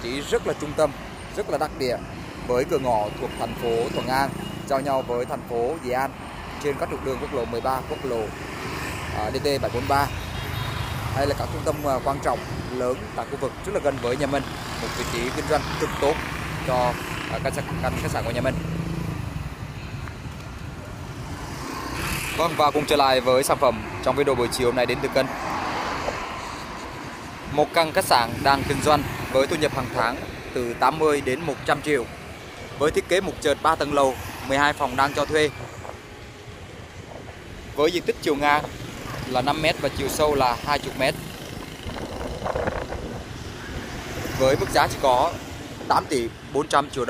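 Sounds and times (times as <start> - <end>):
motorbikes and cars passing: 0.0 - 47.0
street traffic rumble: 0.0 - 47.0.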